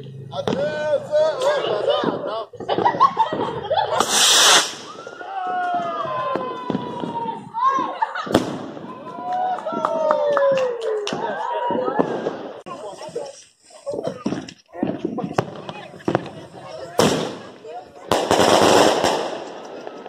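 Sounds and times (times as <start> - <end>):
firework bang: 2.6 - 5.1, 8.3 - 9.0, 15.3 - 20.0
firework launch hiss: 3.9 - 5.0.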